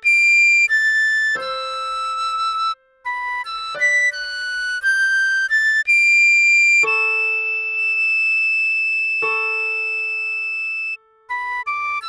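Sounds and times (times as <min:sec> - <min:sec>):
recorder melody: 0:00.0 - 0:12.0.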